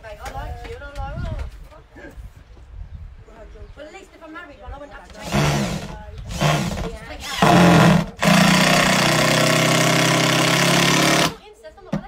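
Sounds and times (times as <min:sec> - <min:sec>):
cordless drill drilling into wood: 0:05.1 - 0:11.4.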